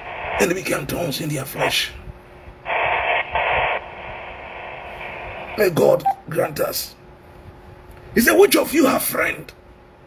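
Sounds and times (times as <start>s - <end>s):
static bursts: 2.7s - 5.7s.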